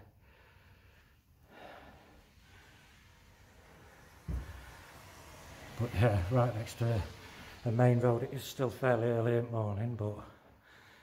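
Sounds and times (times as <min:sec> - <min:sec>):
person breathing softly: 0:00.0 - 0:05.4, 0:10.2 - 0:11.0
dull low thump: 0:04.3 - 0:04.7.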